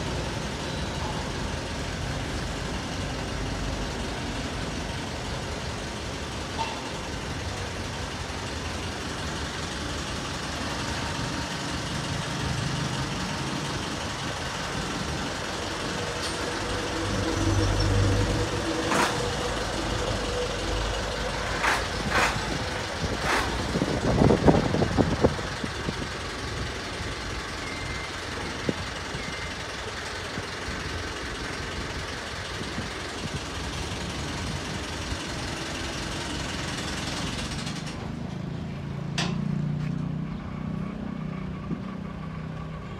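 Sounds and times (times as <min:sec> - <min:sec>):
tractor diesel engine rumbling: 0:00.0 - 0:42.9.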